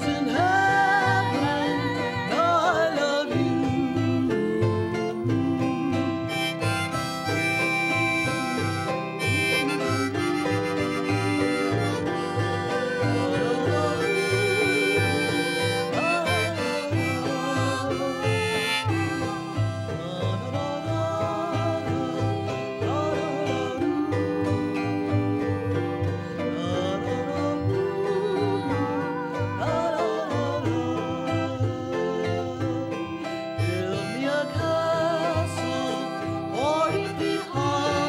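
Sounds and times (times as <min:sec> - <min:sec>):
harmonica melody: 0:00.0 - 0:38.0
strummed autoharp: 0:00.0 - 0:38.0.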